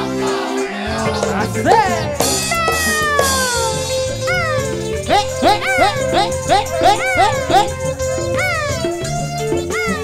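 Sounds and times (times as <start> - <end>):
bamboo gamelan music: 2.2 - 10.0.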